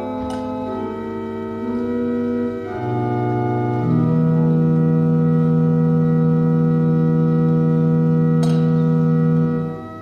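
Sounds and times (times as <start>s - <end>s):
pipe organ sustained chord: 0.0s - 10.0s.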